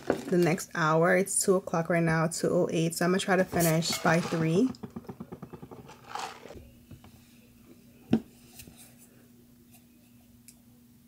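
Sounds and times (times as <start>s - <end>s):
plastic bowl knocking on table: 3.6s - 6.5s.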